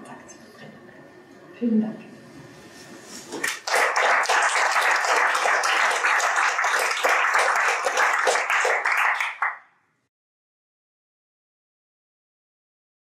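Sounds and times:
audience applauding: 3.4 - 9.6.

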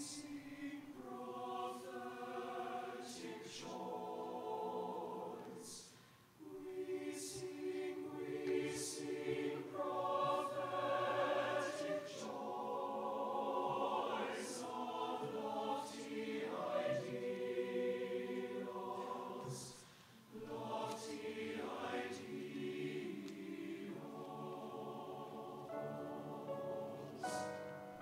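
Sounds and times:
mixed choir singing chords: 0.0 - 28.0.

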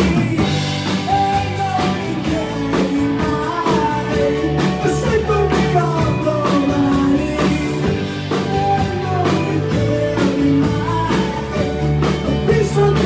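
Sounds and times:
live rock band playing: 0.0 - 13.0
man singing lead: 0.0 - 13.0.

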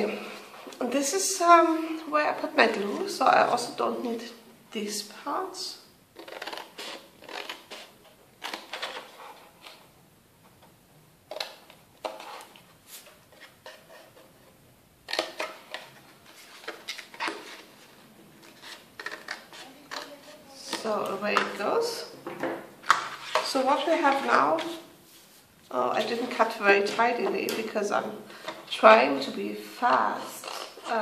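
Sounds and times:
paper rustling: 6.2 - 9.9, 15.1 - 21.1.

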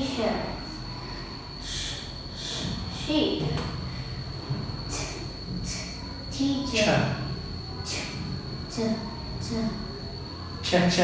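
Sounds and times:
faint high-pitched whine: 0.0 - 11.0
person making hissing ch sounds: 1.6 - 3.1, 4.9 - 6.0.

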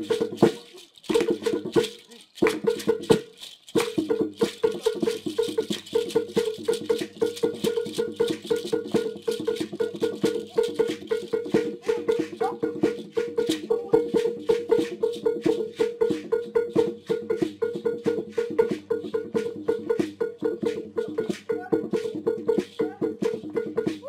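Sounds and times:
shaker rattle: 0.0 - 24.0.

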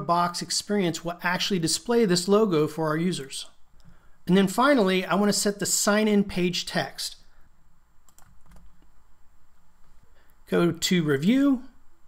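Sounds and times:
computer keyboard keystrokes: 8.1 - 8.7.

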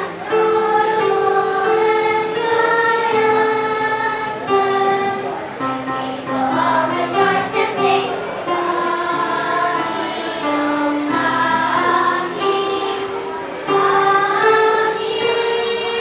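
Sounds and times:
children's choir singing: 0.0 - 16.0.

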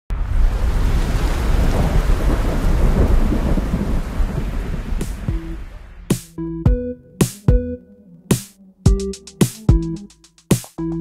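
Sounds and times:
electronic music: 5.3 - 11.0.

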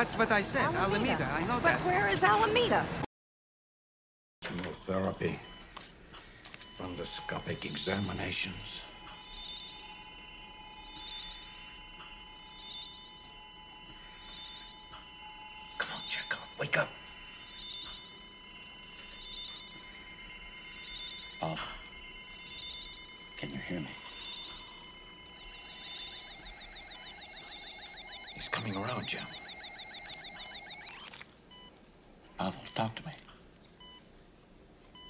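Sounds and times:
hospital monitor beeps: 4.5 - 31.8, 32.4 - 33.2, 33.8 - 34.1
high electronic tones: 6.7 - 31.7
rapid high chirping pulses: 6.8 - 31.2.

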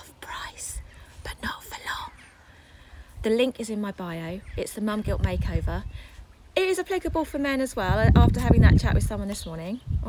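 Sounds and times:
woman whispering: 0.0 - 2.4
wind rumble on microphone: 4.3 - 10.0.

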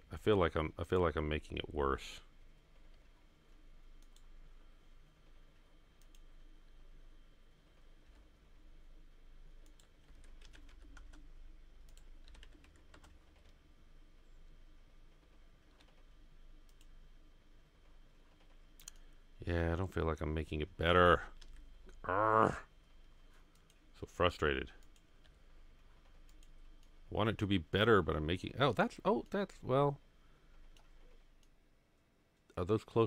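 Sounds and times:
keyboard keystrokes and clicks: 9.6 - 13.6, 15.7 - 16.0.

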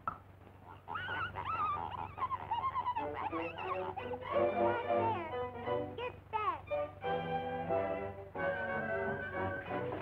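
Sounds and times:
high wavering whimpering cry: 0.6 - 5.6.

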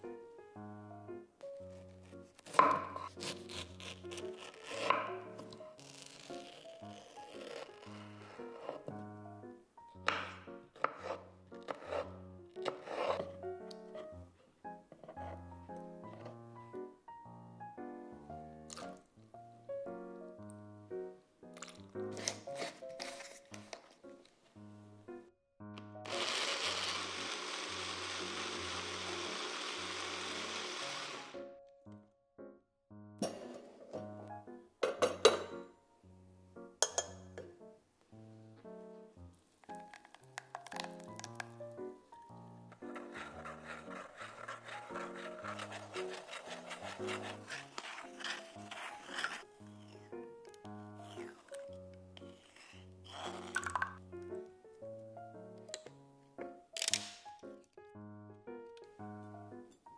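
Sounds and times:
background music: 0.0 - 59.9
knife cutting on wooden board: 2.4 - 8.9, 10.1 - 13.3, 21.6 - 23.7, 42.8 - 50.0.

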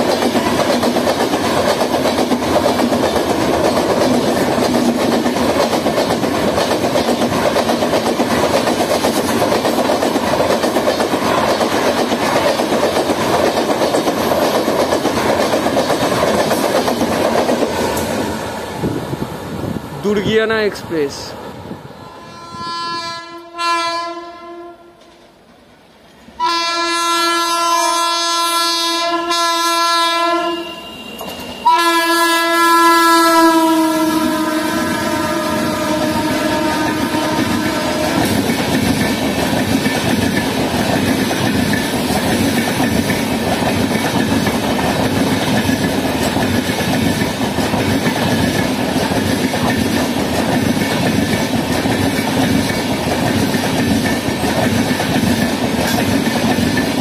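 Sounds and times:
train coaches rumbling and clacking: 0.0 - 22.5, 30.6 - 57.0
locomotive horn blasts: 22.0 - 25.0, 26.4 - 31.0, 31.6 - 38.2.

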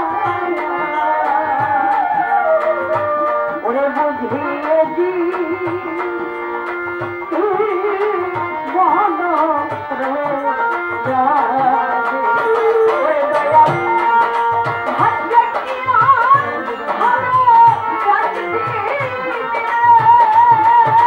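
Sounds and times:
hand drum beating: 0.0 - 21.0
violin: 0.0 - 21.0
woman singing folk song: 3.6 - 6.1, 7.3 - 21.0.

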